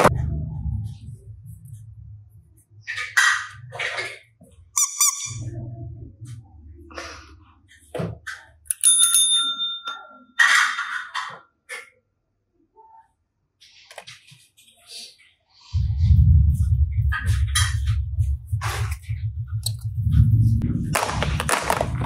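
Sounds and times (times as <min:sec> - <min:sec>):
service bell ding: 0:08.7 - 0:10.3.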